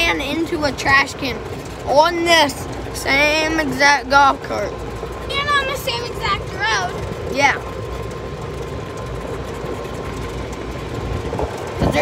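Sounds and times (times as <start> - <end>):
golf cart running rumble: 0.0 - 12.0.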